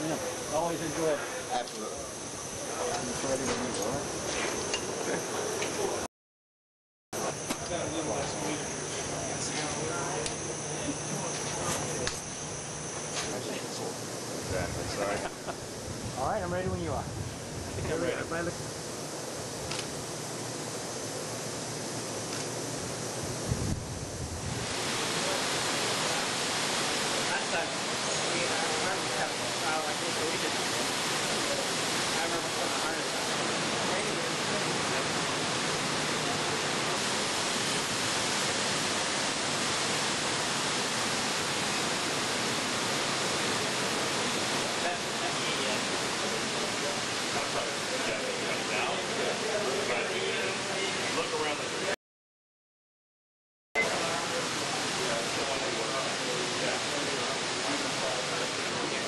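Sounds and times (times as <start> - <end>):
rushing air hiss: 23.1 - 48.0.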